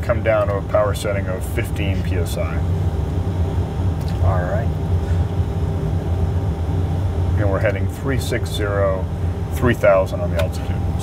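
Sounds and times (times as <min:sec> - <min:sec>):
turboprop engine drone: 0:00.0 - 0:11.0.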